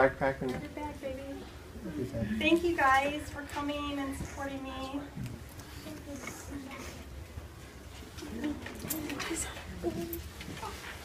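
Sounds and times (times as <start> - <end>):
murmured voices: 3.8 - 11.0.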